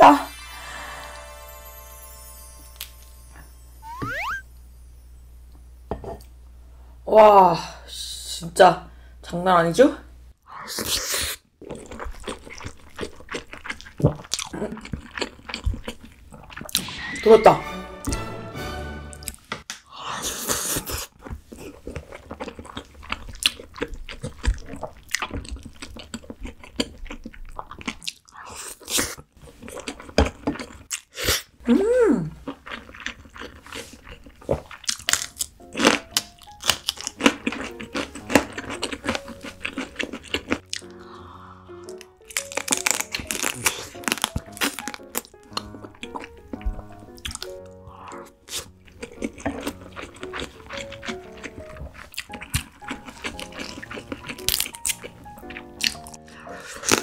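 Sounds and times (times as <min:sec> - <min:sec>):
chewing food: 0:11.6 - 0:16.8, 0:20.2 - 0:31.6, 0:32.3 - 0:57.0
crunching chili pepper: 0:41.8 - 0:46.4, 0:48.5 - 0:57.0.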